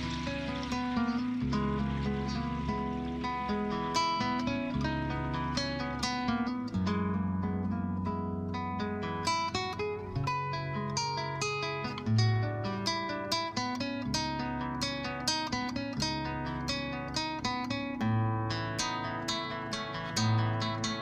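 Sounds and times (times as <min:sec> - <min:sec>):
acoustic guitar playing: 0:00.0 - 0:21.0.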